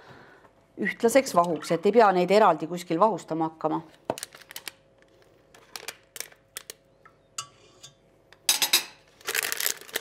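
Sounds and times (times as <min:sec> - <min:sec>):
food packaging crinkling: 0:04.0 - 0:06.8, 0:09.0 - 0:10.0.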